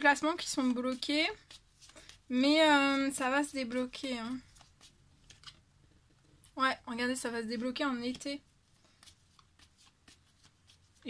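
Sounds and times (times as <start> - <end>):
cards clicking and rustling: 0.4 - 2.3, 2.9 - 6.0, 8.0 - 11.0.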